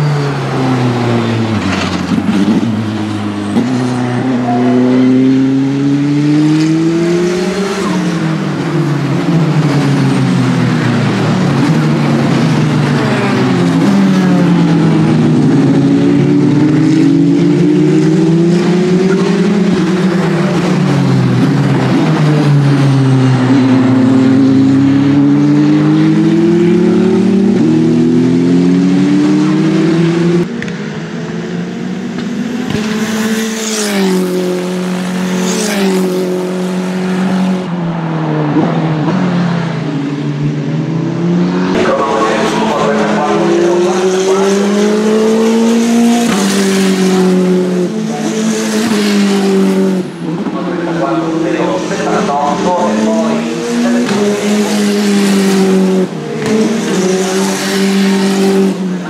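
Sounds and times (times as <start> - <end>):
race car engines at speed: 0.0 - 59.0.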